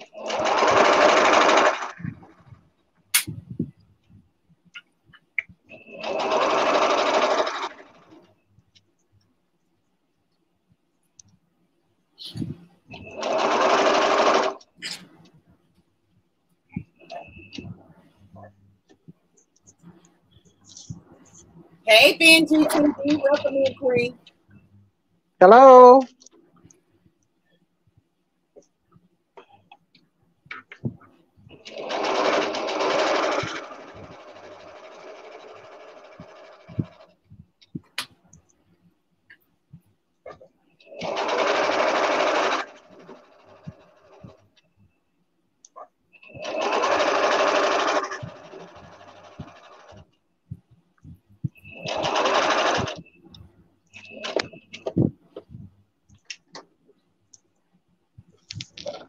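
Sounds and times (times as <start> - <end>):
sewing machine stitching: 0.0 - 2.5, 5.7 - 8.3, 12.9 - 15.2, 31.5 - 37.2, 40.3 - 44.4, 46.2 - 50.1, 51.6 - 53.2, 54.0 - 55.0.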